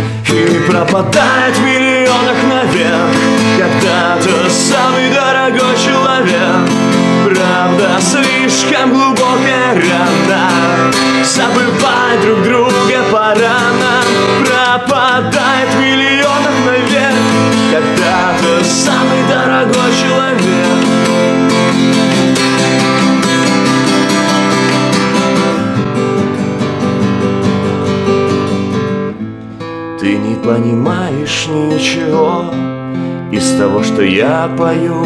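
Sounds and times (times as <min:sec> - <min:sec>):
man singing: 0:00.0 - 0:23.5, 0:30.0 - 0:35.0
acoustic guitar chords: 0:00.0 - 0:35.0.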